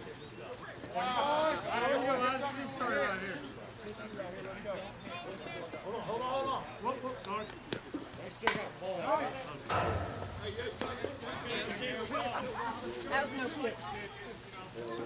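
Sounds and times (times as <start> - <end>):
people talking and calling out: 0.0 - 15.0
sharp knocks: 9.7 - 11.7
dull thud: 9.7 - 11.9.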